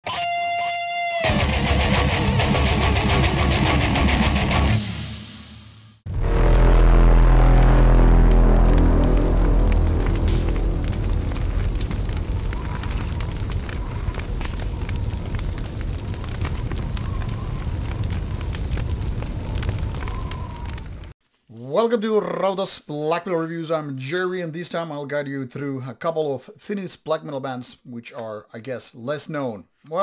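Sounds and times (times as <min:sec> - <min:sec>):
low droning rumble: 0:06.1 - 0:20.0
deep boom: 0:06.1 - 0:20.4
fire crackling: 0:06.1 - 0:22.2.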